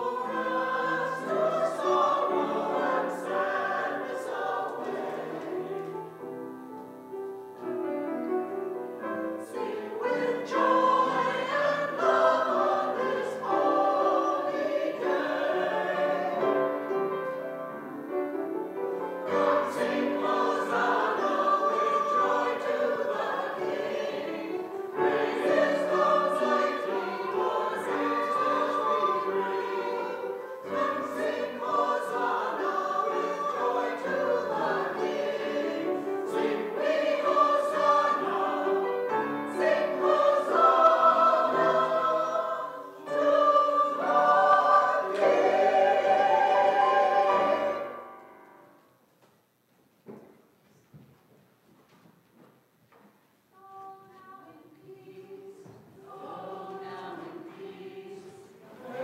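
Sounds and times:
mixed choir singing: 0:00.0 - 0:06.4, 0:08.9 - 0:17.7, 0:19.0 - 0:48.8, 0:53.6 - 0:59.0.

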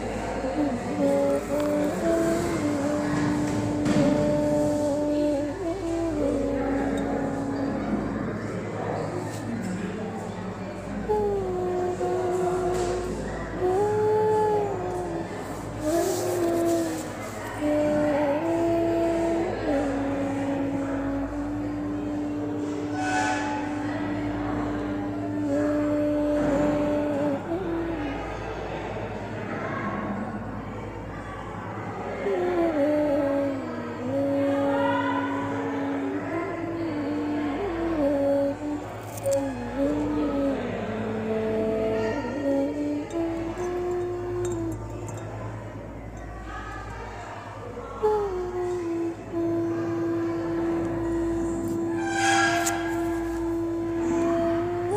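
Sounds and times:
slow sliding melody: 0:00.0 - 0:28.6, 0:32.2 - 0:54.9
steady low hum: 0:00.0 - 0:54.9.

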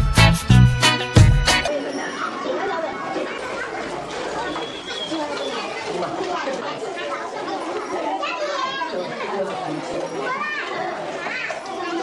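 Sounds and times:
babble of overlapping voices: 0:01.6 - 0:12.0.

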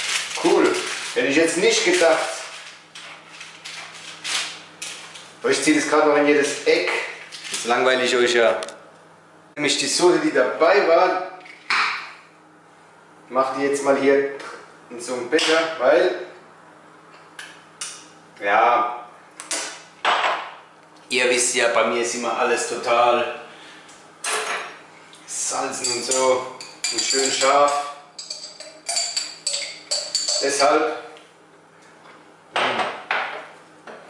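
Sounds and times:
dough rustling on paper: 0:00.0 - 0:05.4.

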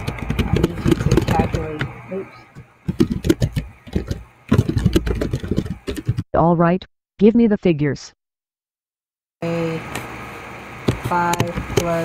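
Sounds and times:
low background rumble: 0:00.0 - 0:06.2
keyboard typing clicks: 0:02.9 - 0:06.2.

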